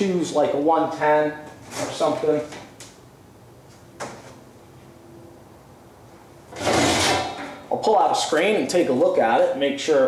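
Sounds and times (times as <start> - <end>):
faint background hum: 0.0 - 10.0.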